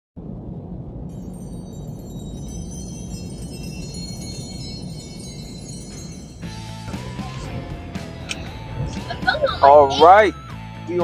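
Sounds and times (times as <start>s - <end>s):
low drone: 0.2s - 11.0s
shimmering chime tones: 1.1s - 7.5s.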